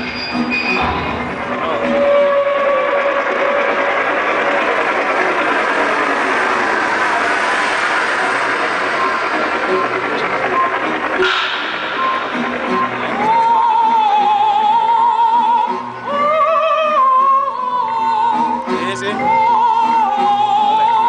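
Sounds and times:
loud live music: 0.0 - 21.0.

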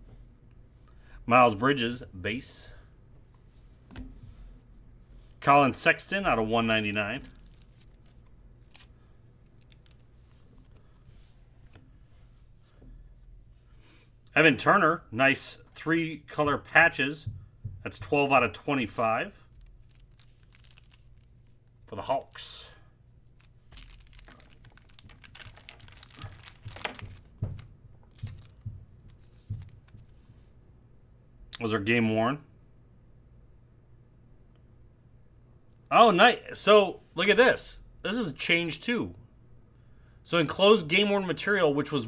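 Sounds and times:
low steady hum: 0.0 - 42.0
cards and plastic rustling: 5.2 - 11.8, 18.9 - 22.5, 23.2 - 30.3.

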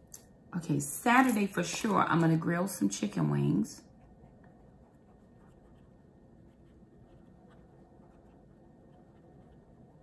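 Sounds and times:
pen scratching on paper: 4.0 - 10.0.

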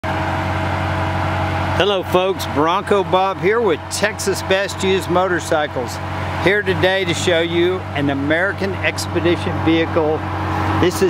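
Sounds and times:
pickup truck engine idling: 0.0 - 11.0.

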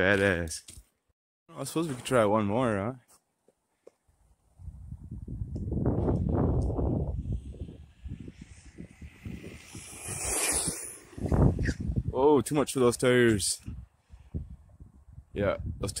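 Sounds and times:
wind buffeting microphone: 4.3 - 16.0
rc car high hiss: 8.4 - 11.7.

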